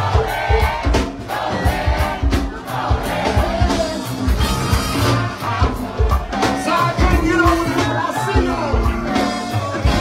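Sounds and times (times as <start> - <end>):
drum and percussion beat: 0.0 - 10.0
voices singing: 0.0 - 10.0.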